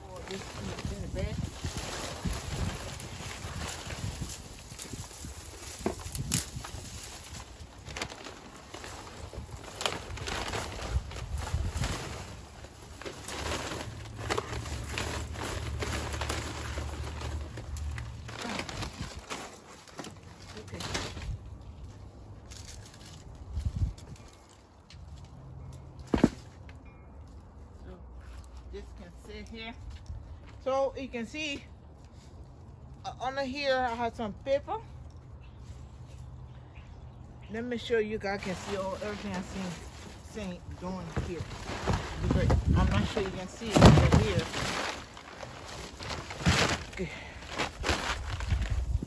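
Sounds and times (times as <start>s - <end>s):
dry leaves rustling and crackling: 0.0s - 26.3s, 37.1s - 49.0s.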